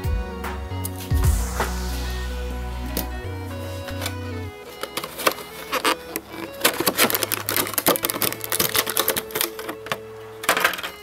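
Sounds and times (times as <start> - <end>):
plastic packaging crackling: 3.9 - 11.0.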